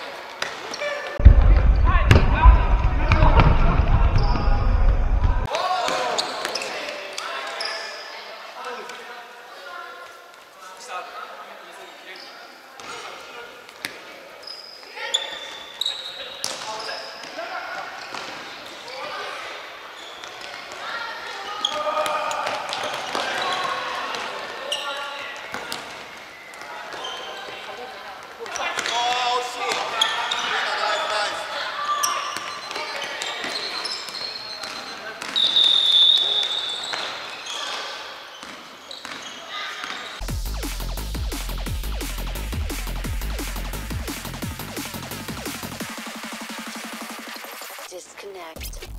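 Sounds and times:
players calling out: 0.7 - 7.3
electronic music: 40.2 - 48.0, 48.6 - 48.9.

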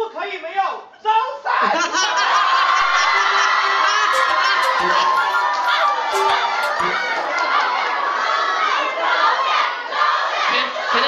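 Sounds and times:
crowd shouting and cheering: 2.2 - 11.0.

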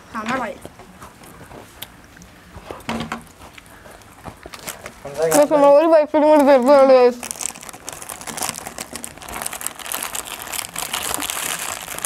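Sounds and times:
biscuits being chewed: 0.9 - 5.0, 7.2 - 12.0.

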